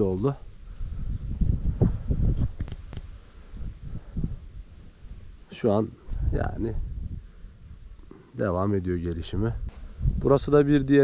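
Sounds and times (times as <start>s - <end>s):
wind rumbling on microphone: 0.0s - 8.1s, 8.9s - 11.0s
insect chirping high pitch: 0.0s - 11.0s.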